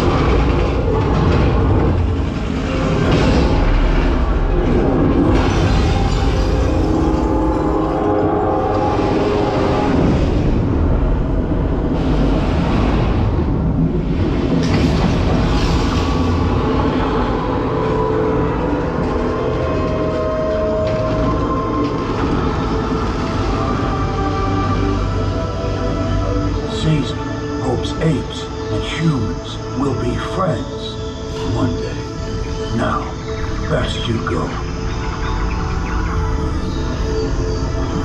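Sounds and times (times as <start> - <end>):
low rumble of effects: 0.0 - 38.0.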